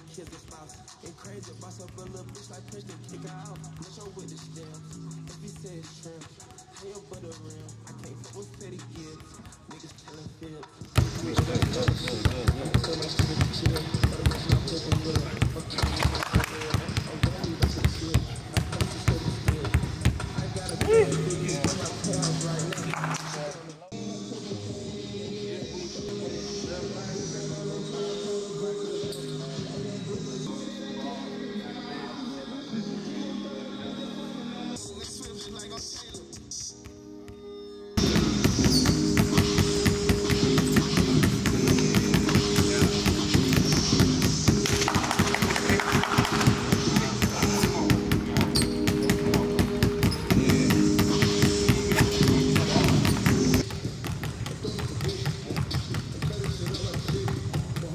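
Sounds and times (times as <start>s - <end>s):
basketballs bouncing on court: 0.0s - 23.1s, 38.0s - 57.9s.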